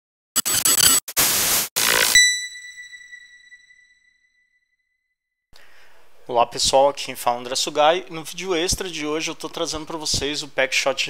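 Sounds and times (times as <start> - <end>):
high ringing tone: 1.8 - 4.5.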